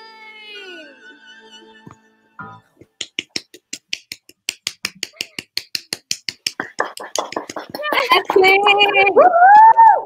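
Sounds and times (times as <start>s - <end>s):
hands clapping fast: 2.8s - 9.8s
person's voice: 7.7s - 9.2s.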